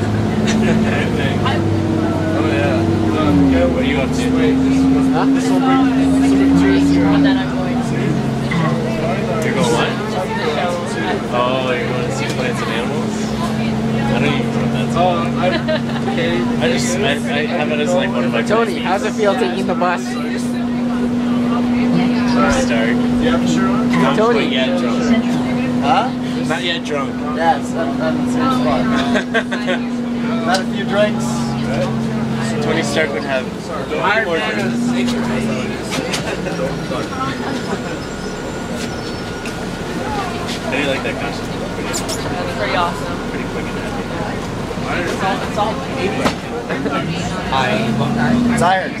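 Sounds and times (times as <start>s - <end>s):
bus engine humming: 0.0s - 49.0s
people chattering: 0.0s - 49.0s.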